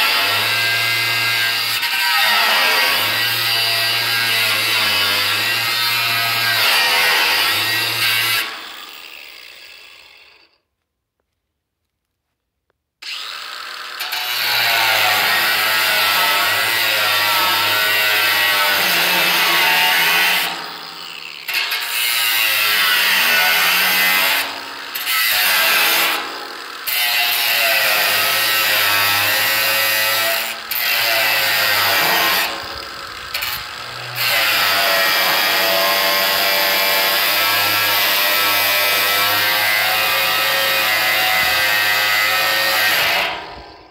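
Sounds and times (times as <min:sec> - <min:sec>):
angle grinder cutting metal: 0:00.0 - 0:10.6, 0:13.0 - 0:43.9.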